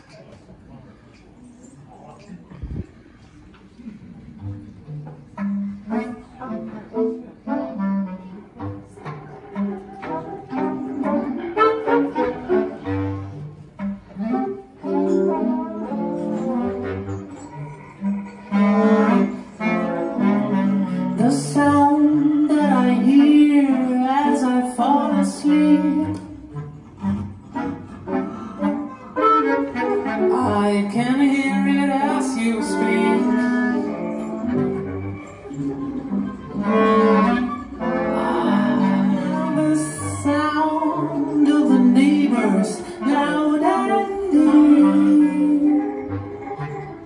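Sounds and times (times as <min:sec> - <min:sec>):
jazz ensemble playing: 0:04.0 - 0:47.0
woman singing: 0:21.0 - 0:26.4, 0:30.3 - 0:34.3, 0:37.9 - 0:46.8.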